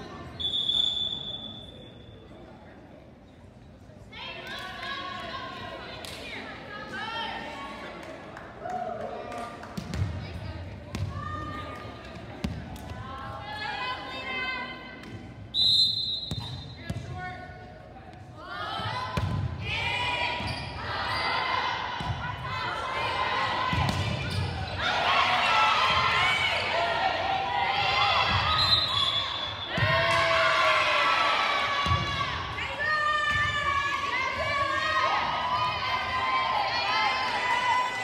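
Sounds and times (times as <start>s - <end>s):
players calling and shouting: 9.8s - 38.0s
sneakers squeaking on floor: 20.4s - 21.2s.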